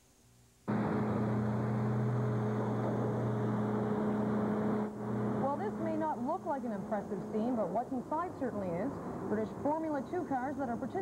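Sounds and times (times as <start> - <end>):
truck engine humming: 0.7 - 8.1
person talking: 5.4 - 11.0.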